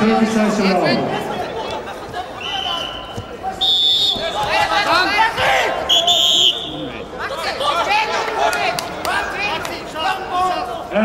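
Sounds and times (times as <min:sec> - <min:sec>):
crowd shouting: 0:00.0 - 0:11.0
referee's whistle blasts: 0:02.4 - 0:04.5, 0:05.8 - 0:06.8.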